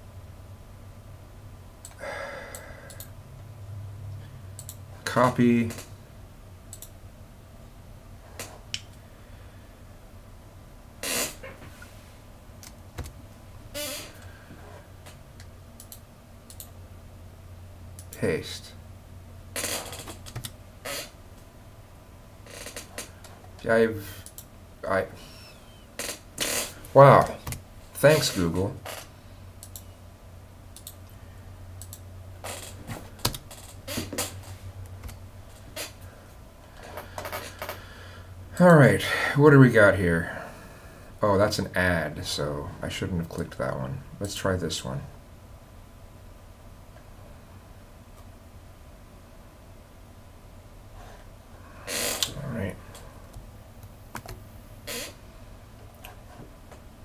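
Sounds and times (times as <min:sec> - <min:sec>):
man exhaling: 0:02.0 - 0:03.0.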